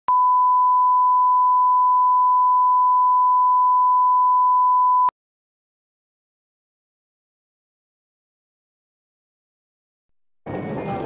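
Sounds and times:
steady line-up tone beep: 0.1s - 5.1s.

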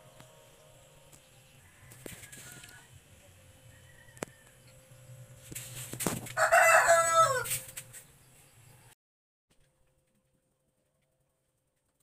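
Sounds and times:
rooster crowing: 1.4s - 3.0s, 3.6s - 5.0s, 6.3s - 7.7s.

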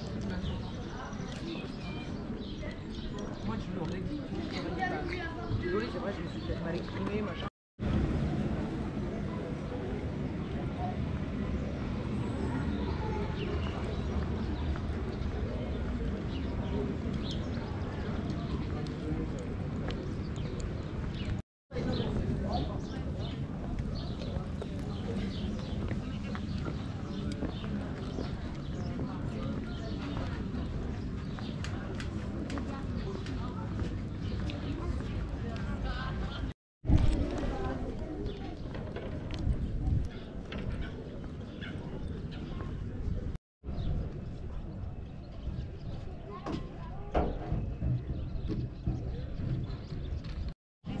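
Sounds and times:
footsteps on stone paving: 0.1s - 7.5s, 22.0s - 40.2s
wind rumbling on microphone: 7.8s - 51.0s.

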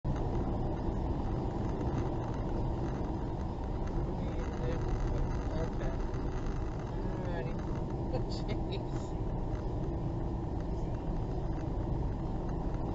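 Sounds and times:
muffled car road rumble: 0.0s - 12.9s.

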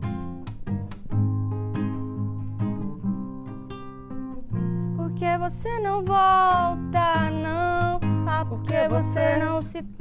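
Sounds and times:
acoustic guitars strumming chords: 0.0s - 10.0s.

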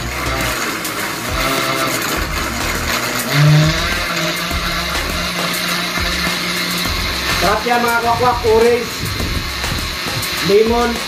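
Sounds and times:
blender running: 0.0s - 11.0s.

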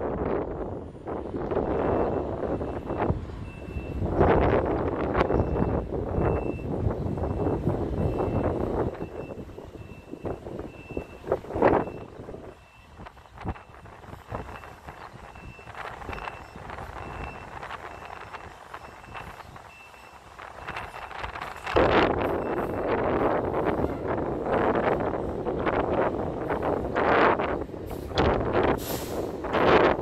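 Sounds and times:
wind buffeting microphone: 0.0s - 30.0s
truck backup alarm beeping: 0.6s - 30.0s.

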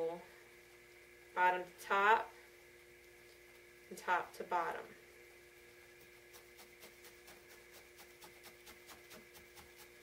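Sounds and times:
low steady hum: 0.0s - 10.0s
felting needle stabbing wool: 6.3s - 10.0s.

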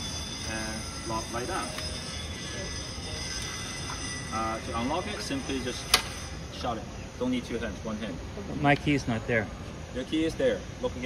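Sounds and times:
faint steady high tones: 0.0s - 11.0s.

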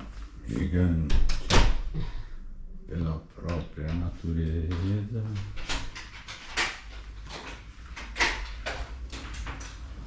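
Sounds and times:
person speaking: 2.7s - 5.7s.

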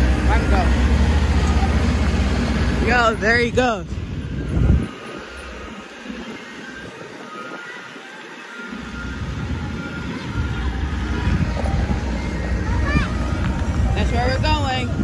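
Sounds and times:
wind buffeting microphone: 0.0s - 8.0s, 9.0s - 15.0s
truck engine rumble driving off: 0.0s - 15.0s.

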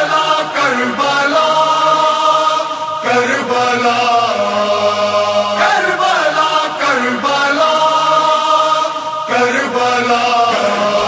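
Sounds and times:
held vocal drone: 0.0s - 11.0s
wordless chanted vocal chorus: 0.0s - 11.0s.

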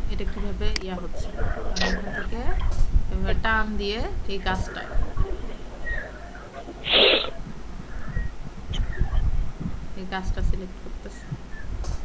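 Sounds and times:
person's breathy burst: 6.9s - 7.4s.

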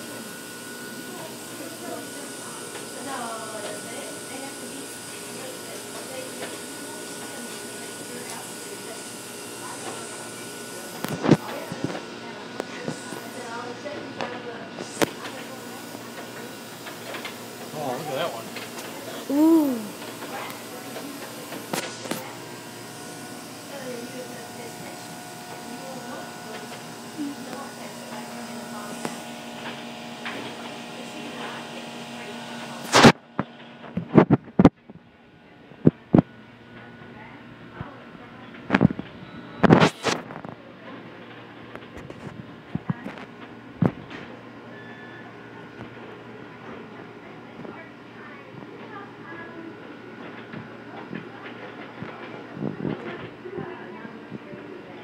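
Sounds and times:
steady room hum: 17.2s - 55.0s
indistinct voices: 19.0s - 29.3s.

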